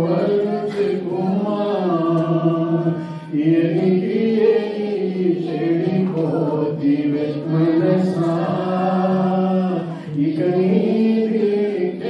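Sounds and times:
man singing slow melody: 0.0s - 12.0s.

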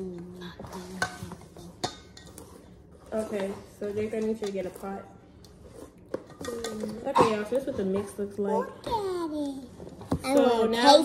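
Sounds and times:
utensil stirring batter in bowl: 0.0s - 8.3s.

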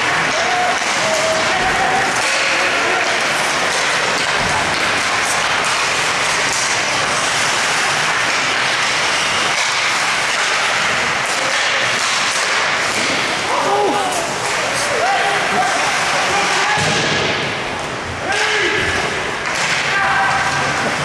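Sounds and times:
crowd noise in ice rink: 0.0s - 21.0s.

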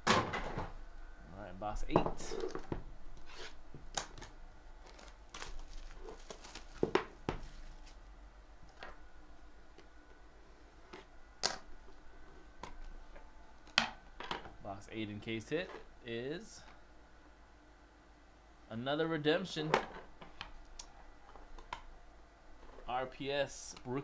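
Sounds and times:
plastic shrink wrap crinkling: 4.0s - 8.0s.

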